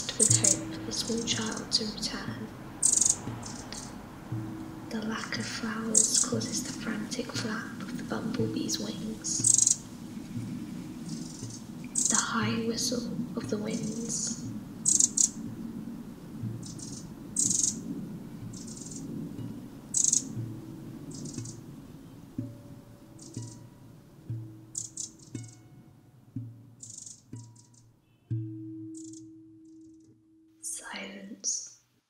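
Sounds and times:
held low tone: 0.0 - 26.8
low shifting electronic hum: 0.0 - 30.8.

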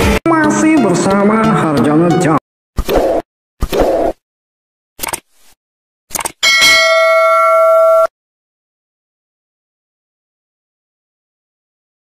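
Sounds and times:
short clicks: 5.0 - 5.3, 6.1 - 6.4
notification bell ding: 6.4 - 8.1.

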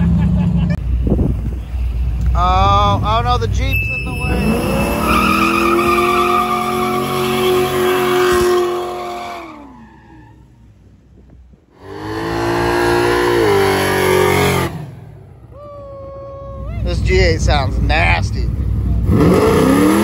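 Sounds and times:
tires squealing: 2.4 - 10.8
car engine revving high: 4.3 - 9.8, 11.8 - 15.2, 18.6 - 20.0.

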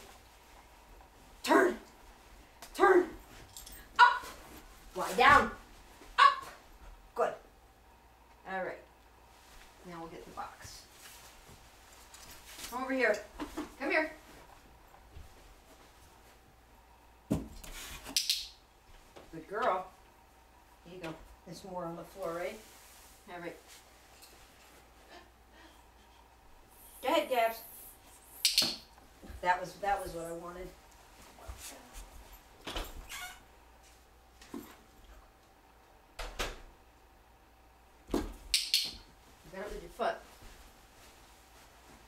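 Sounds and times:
sharp click: 28.4 - 28.8, 38.5 - 39.0.

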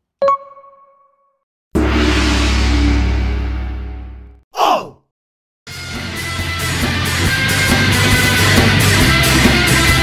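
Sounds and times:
deep booming hit: 1.8 - 4.4.

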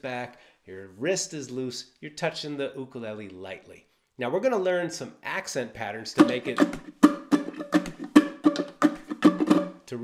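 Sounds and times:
ukulele strumming: 6.2 - 10.0.

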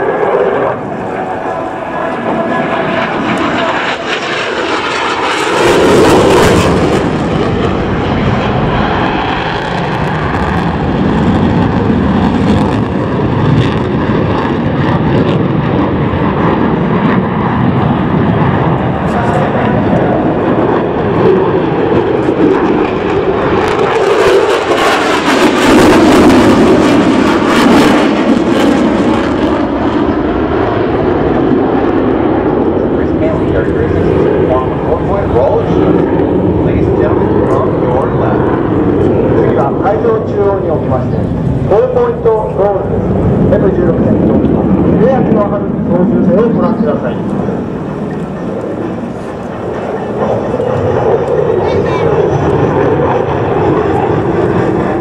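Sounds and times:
fighter jet engine roar: 0.0 - 55.0.

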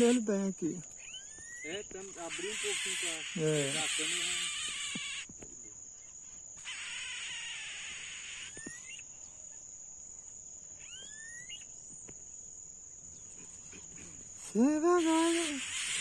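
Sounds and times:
high-pitched insect drone: 0.0 - 12.2, 12.9 - 16.0
rising whistled bird calls: 1.0 - 3.2, 10.8 - 11.7.

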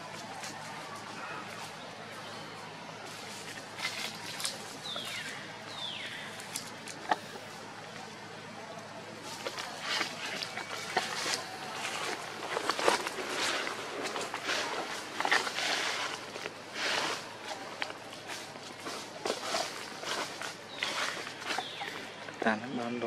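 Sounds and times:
footsteps crunching dry leaves: 9.2 - 22.2.

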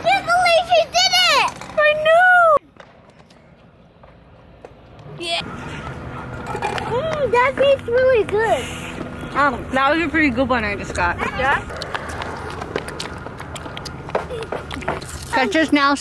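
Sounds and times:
outdoor background noise: 0.0 - 16.0.

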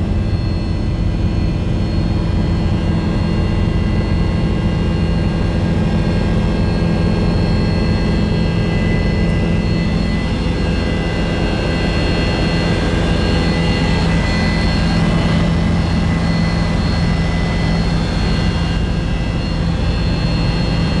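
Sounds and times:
helicopter engine and rotor drone: 0.0 - 21.0
high whine: 0.0 - 21.0.

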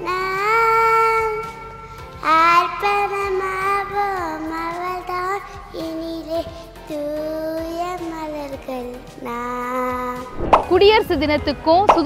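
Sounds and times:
young girl singing: 0.0 - 10.4.

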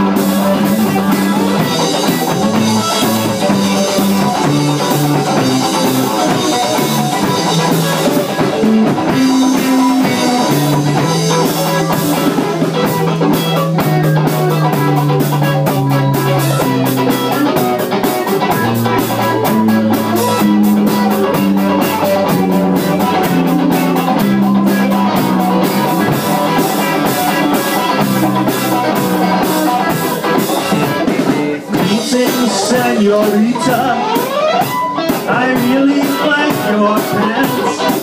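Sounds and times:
bass guitar low notes: 0.0 - 34.0
drum kit with cymbals: 0.0 - 38.0
electric guitar: 0.0 - 38.0.

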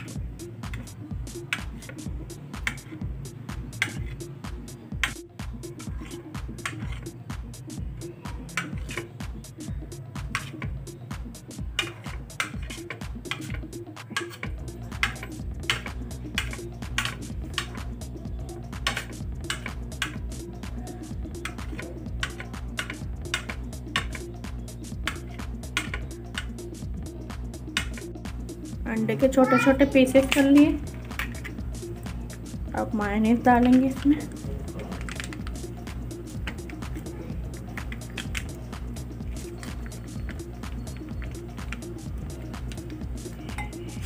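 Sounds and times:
background music with pulsing beat: 0.0 - 44.0.

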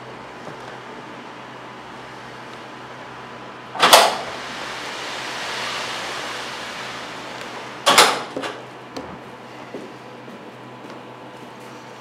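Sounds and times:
hiss: 3.8 - 8.8.

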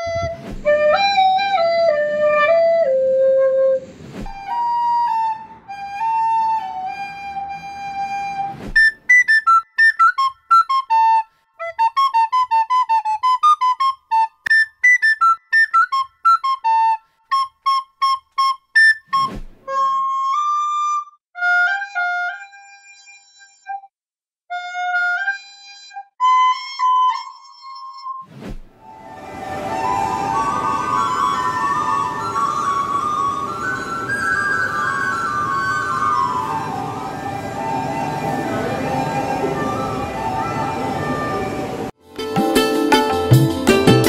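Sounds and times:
brief thump: 0.0 - 0.8, 4.0 - 4.4, 8.6 - 8.9, 19.2 - 19.6.

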